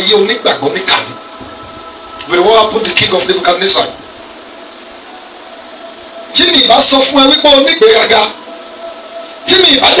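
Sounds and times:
amplified speech: 0:00.0 - 0:04.2, 0:06.3 - 0:08.4
background hiss: 0:00.0 - 0:10.0.

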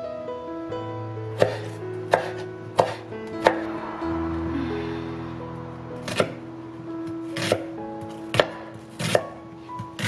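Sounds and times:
knife slicing onion on board: 0:01.4 - 0:03.6, 0:06.0 - 0:06.4, 0:07.3 - 0:10.0.

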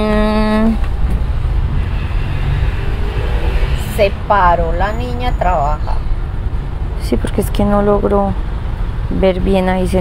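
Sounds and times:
loud low rumble: 0:00.0 - 0:07.3.

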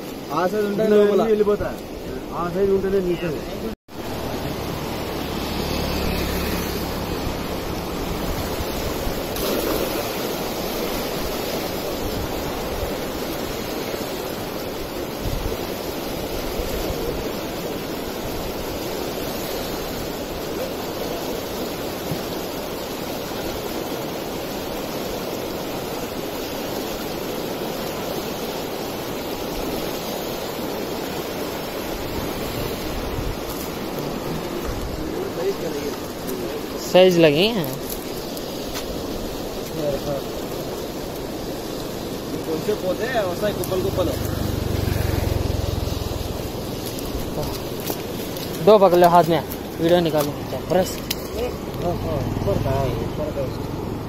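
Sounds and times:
floodwater rushing through rapids: 0:00.0 - 0:54.0.

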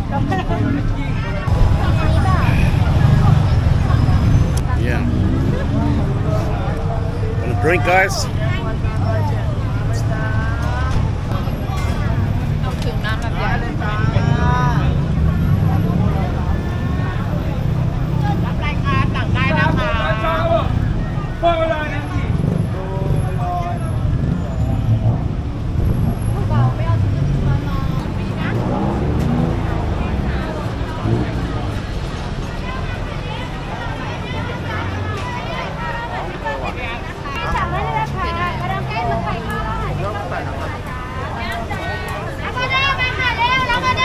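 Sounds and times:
people talking: 0:00.0 - 0:24.1, 0:26.3 - 0:44.0
road traffic rumble: 0:00.0 - 0:44.0.

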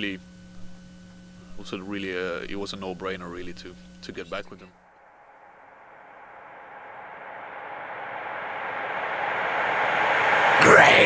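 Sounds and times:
hiss-like noise: 0:04.9 - 0:11.0.

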